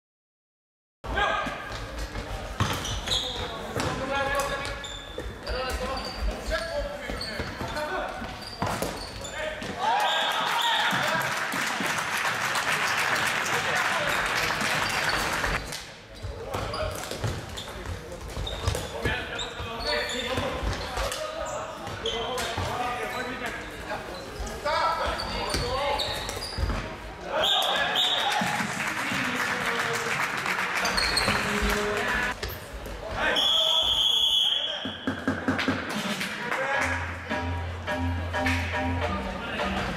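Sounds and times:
crowd cheering: 0:09.8 - 0:15.6.

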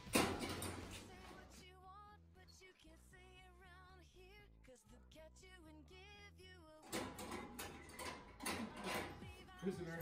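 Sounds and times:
metal locker latch rattling: 0:00.0 - 0:00.9
background music with singing: 0:00.0 - 0:10.0.

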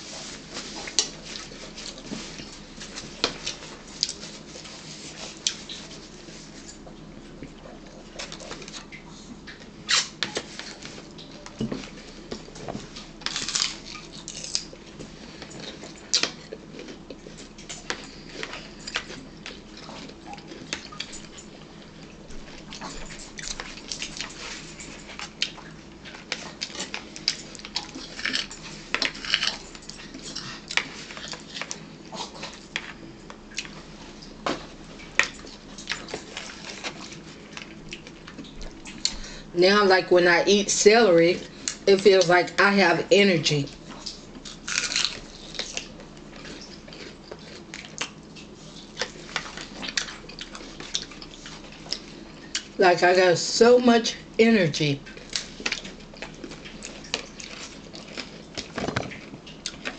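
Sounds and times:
celery crunching: 0:12.8 - 0:21.4, 0:43.9 - 0:52.2.

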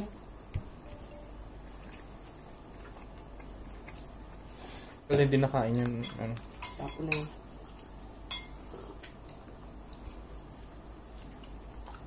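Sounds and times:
tableware clinking: 0:08.3 - 0:08.6.

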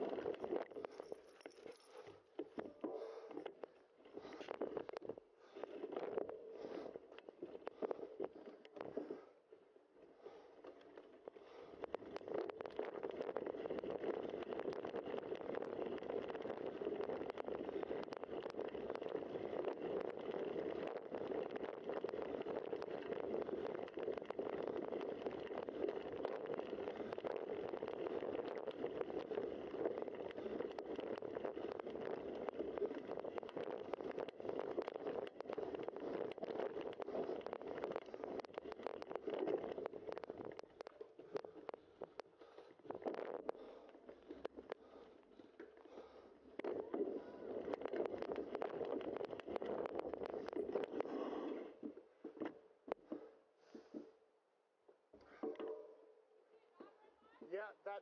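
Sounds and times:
bicycle tyres rolling on dirt: 0:00.0 - 0:54.2.

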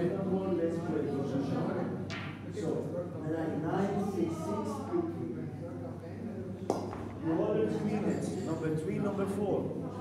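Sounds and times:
quiet talk: 0:00.0 - 0:10.0.

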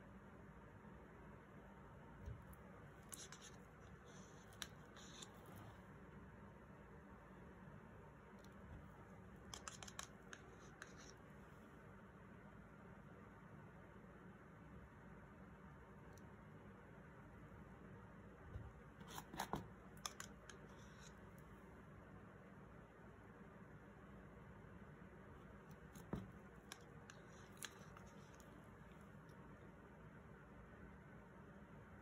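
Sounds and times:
faint clicks and scratches: 0:02.2 - 0:06.0, 0:08.3 - 0:11.7, 0:18.6 - 0:21.6, 0:25.4 - 0:29.6.

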